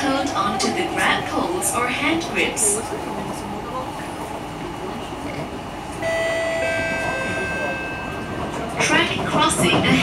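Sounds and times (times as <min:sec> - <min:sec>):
metro train running rumble: 0:00.0 - 0:10.0.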